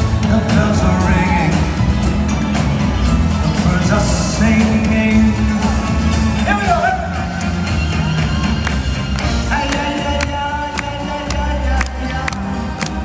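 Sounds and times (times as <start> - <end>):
crowd noise: 0.0 - 13.0
live band playing: 0.0 - 13.0.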